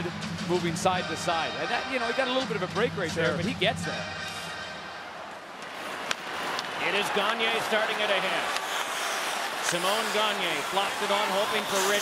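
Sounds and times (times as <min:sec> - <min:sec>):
crowd din in arena: 0:00.0 - 0:12.0.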